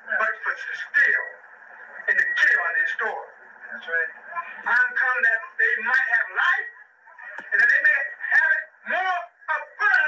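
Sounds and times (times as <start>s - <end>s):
man speaking on old recording: 0.0s - 10.0s.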